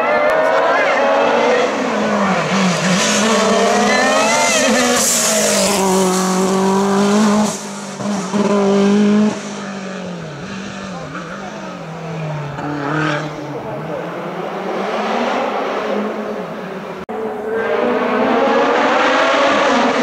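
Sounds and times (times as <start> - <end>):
race car engine at full throttle: 0.0 - 20.0.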